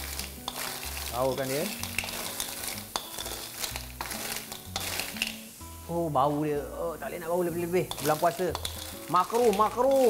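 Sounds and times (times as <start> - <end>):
shells clattering in a wok: 0.0 - 5.6, 7.6 - 10.0
light sizzle: 0.0 - 10.0.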